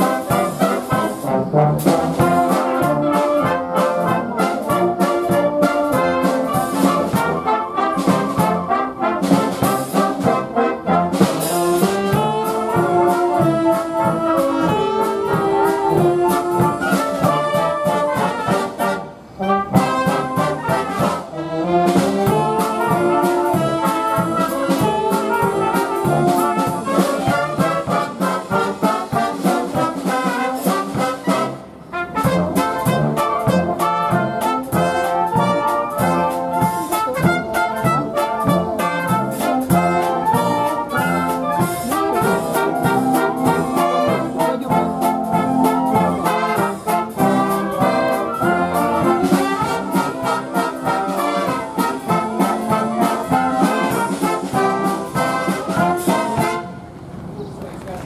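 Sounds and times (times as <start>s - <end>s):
military wind band playing: 0.0s - 57.4s.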